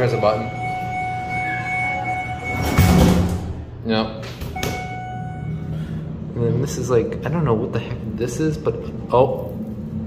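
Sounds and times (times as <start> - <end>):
steady high tone: 0.0 - 3.4, 4.6 - 7.2
elevator doors sliding shut: 0.0 - 5.6.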